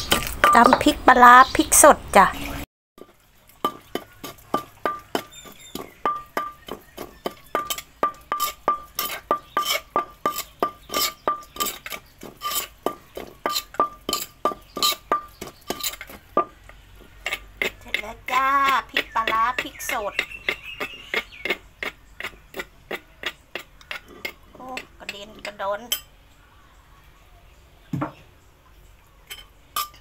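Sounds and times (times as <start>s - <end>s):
pestle pounding in a clay mortar: 0.0s - 1.0s, 3.0s - 25.6s.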